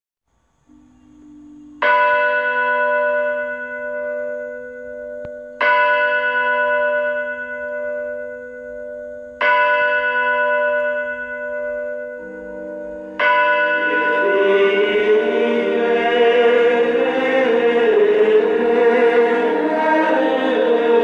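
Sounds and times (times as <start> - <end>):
low steady tone: 0.3 - 5.8, 10.8 - 21.0
bell tolling: 0.7 - 21.0.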